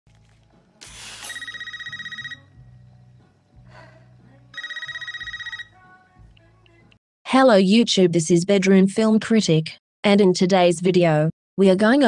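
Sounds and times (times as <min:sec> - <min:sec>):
telephone ringing with warbling trill: 0:01.2 - 0:02.6, 0:04.6 - 0:05.8.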